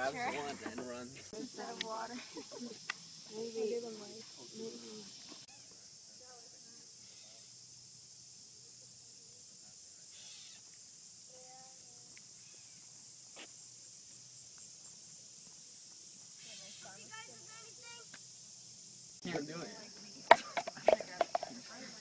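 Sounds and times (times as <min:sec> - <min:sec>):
insects chirping in grass: 0:00.0 - 0:22.0.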